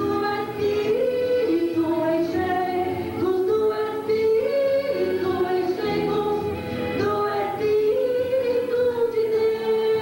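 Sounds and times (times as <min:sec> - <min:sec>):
woman singing gospel song: 0:00.0 - 0:10.0.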